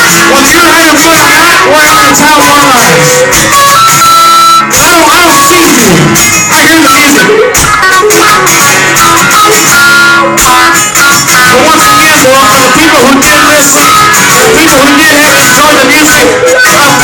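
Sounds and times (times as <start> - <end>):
man singing: 0.0 - 10.2, 11.0 - 17.0
acoustic guitars strumming: 0.0 - 17.0.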